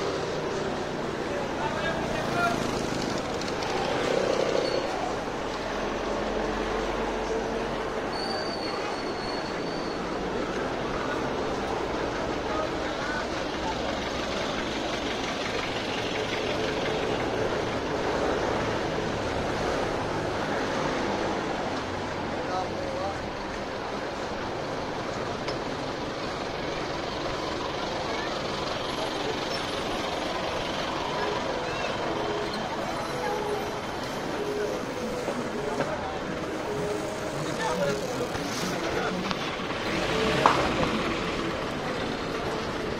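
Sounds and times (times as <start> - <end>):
people's voices: 0.0 - 42.9
traffic and vehicle engines: 0.0 - 42.9.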